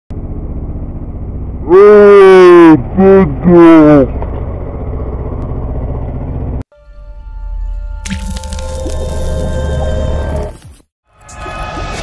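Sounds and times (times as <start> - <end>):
deep rumble: 0.1 - 6.6
wet splat: 8.0 - 8.8.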